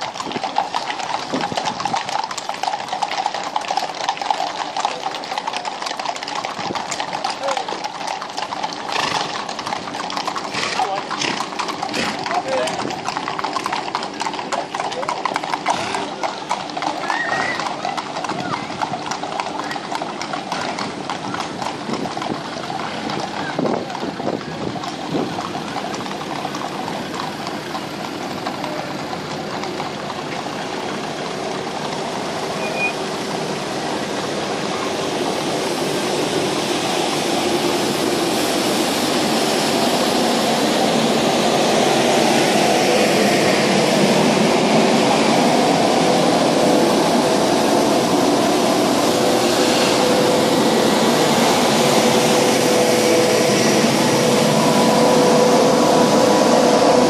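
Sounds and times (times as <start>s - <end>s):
horses hooves clip-clopping on road: 0.0s - 57.0s
steady vehicle noise: 0.0s - 57.0s.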